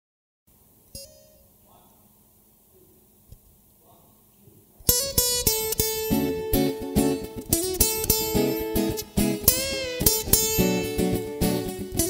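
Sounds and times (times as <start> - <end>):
acoustic guitars strumming: 4.9 - 12.0.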